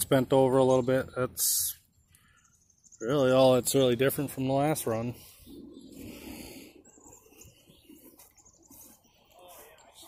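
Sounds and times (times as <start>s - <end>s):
faint high bird chirps: 0.8s - 10.0s.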